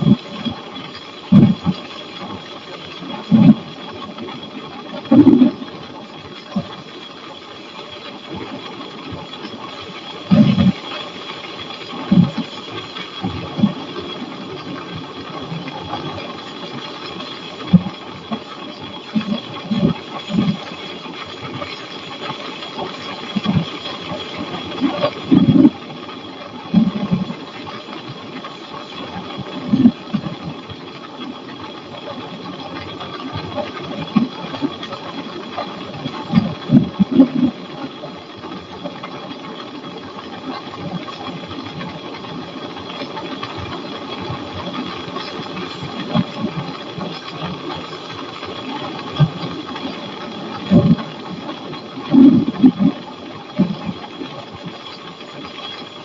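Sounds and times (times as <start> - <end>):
microlight engine droning: 0.0 - 56.0.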